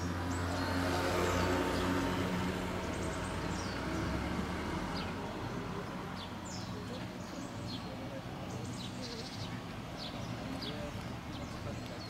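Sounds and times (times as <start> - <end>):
vehicle engine passing by: 0.0 - 6.6.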